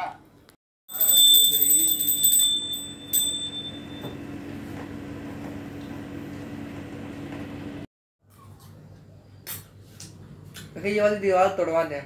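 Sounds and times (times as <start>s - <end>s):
hand bell ringing: 0.9s - 4.2s.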